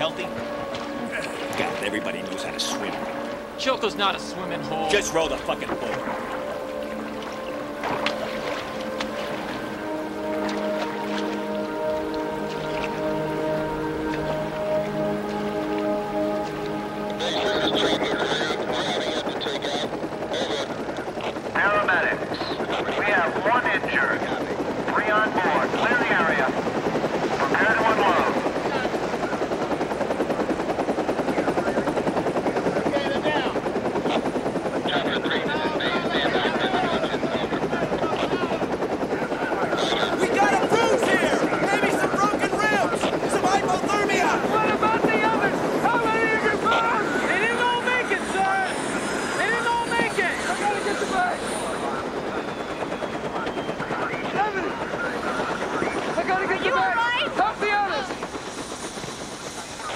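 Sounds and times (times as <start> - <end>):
helicopter flying: 0.0 - 59.9
people calling and shouting: 0.0 - 59.9.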